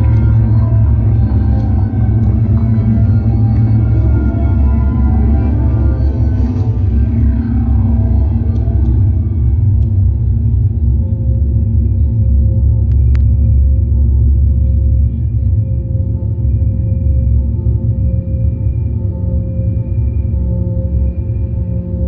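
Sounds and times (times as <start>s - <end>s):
deep rumbling electronic drone: 0.0s - 22.0s.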